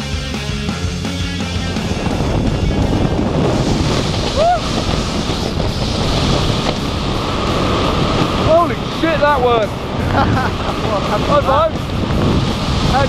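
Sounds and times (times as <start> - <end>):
wind rushing over microphone: 0.8 - 13.0
vocal whoop: 4.3 - 4.8.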